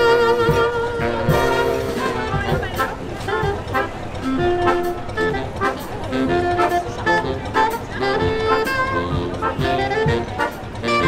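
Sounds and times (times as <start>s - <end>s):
brass band playing: 0.0s - 11.0s
people talking: 0.0s - 11.0s
trombone notes: 0.0s - 11.0s.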